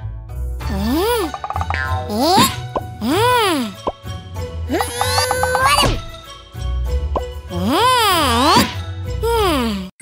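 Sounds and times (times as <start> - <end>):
light background music: 0.0 - 9.9.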